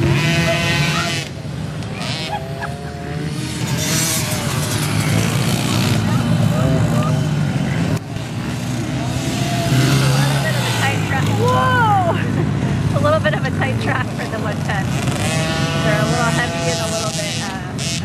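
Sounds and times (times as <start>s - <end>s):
dirt bike engines revving: 0.0s - 18.0s.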